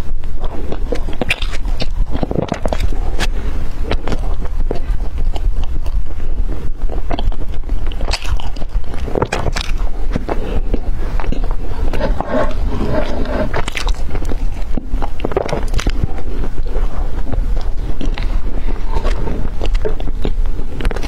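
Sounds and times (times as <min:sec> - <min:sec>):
low rumble: 0:00.0 - 0:21.0
person chewing bread: 0:00.0 - 0:21.0.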